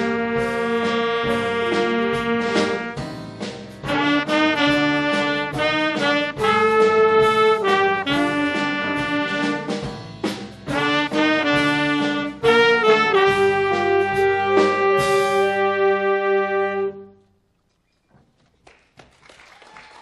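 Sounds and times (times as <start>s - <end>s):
jazz big band playing: 0.0s - 17.2s.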